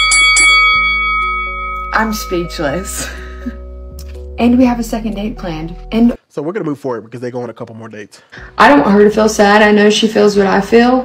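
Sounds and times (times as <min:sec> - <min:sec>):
bell-like chime: 0:00.0 - 0:04.0
soft background music: 0:00.8 - 0:11.0.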